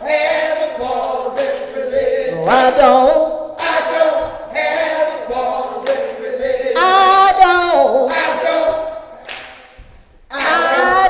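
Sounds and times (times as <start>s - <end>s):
choir singing long notes: 0.0s - 9.2s, 10.3s - 11.0s.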